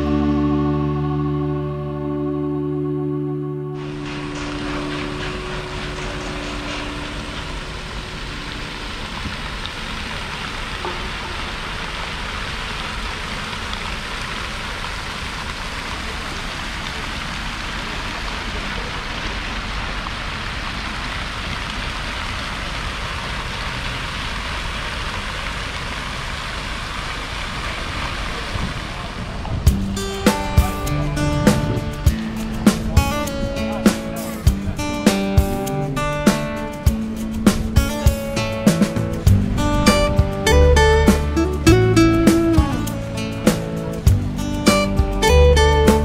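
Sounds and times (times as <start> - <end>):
fountain jets splashing into basin: 3.8 - 38.6.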